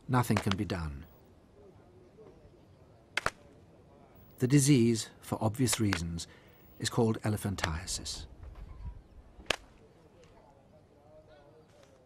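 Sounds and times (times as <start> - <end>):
sharp crack: 0.2 - 0.8, 3.1 - 3.6, 5.6 - 6.2, 7.5 - 8.1, 9.4 - 10.4.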